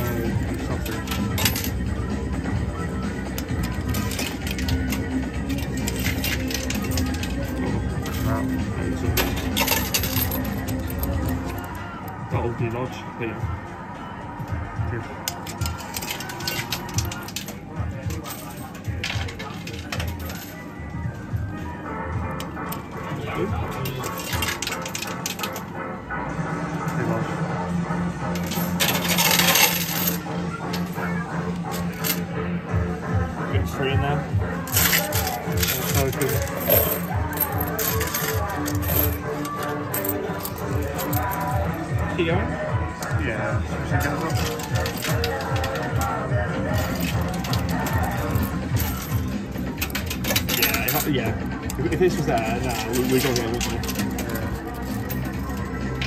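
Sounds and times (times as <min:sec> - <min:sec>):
coins clinking and clattering: 0:00.0 - 0:01.9, 0:03.1 - 0:11.8, 0:15.2 - 0:20.7, 0:22.3 - 0:25.7, 0:28.3 - 0:32.3, 0:34.6 - 0:41.9, 0:43.9 - 0:56.0
arcade background music: 0:00.0 - 0:56.0.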